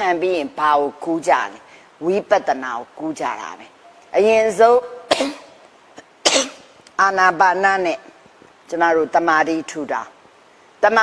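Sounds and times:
woman coughing: 5.1 - 6.7.

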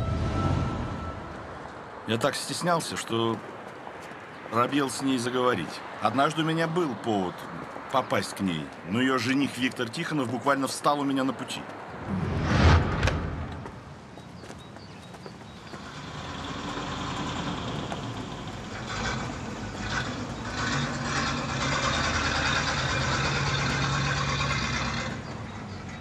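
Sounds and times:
truck engine droning: 15.8 - 26.0.

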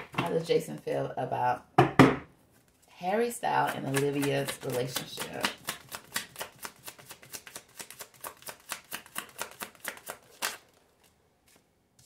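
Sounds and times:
cards being shuffled: 3.9 - 11.7.

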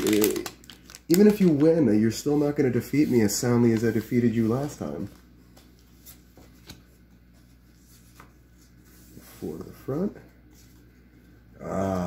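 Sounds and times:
cards rustling by hand: 0.0 - 9.8
low steady hum: 0.0 - 12.0.

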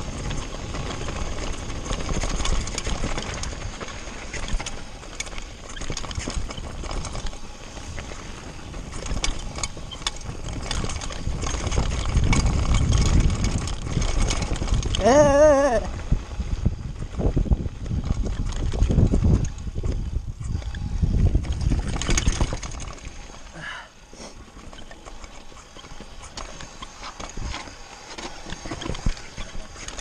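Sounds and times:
wind on microphone: 0.0 - 23.7
bike clicks and knocks: 0.0 - 30.0
bike rattling over stones: 0.0 - 30.0.

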